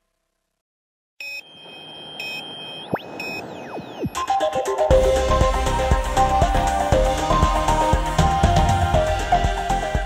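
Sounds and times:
electronic music with steady beat: 3.6 - 10.0.

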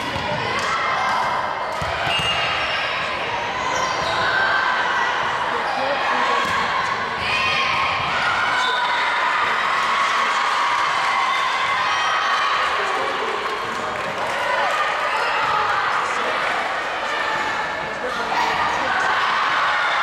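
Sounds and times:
voices echoing in a gym: 0.0 - 20.0.

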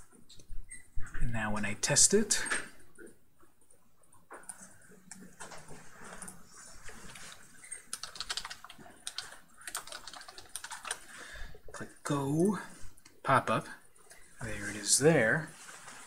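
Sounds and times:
typing on computer keyboard: 7.1 - 11.2.

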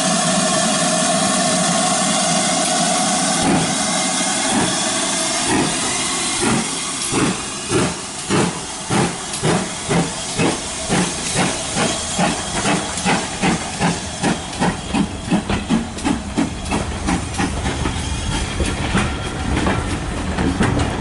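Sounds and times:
steam hissing: 0.0 - 21.0
steam locomotive exhaust chuffing: 0.0 - 21.0
train wheels rolling on rails: 0.0 - 21.0.

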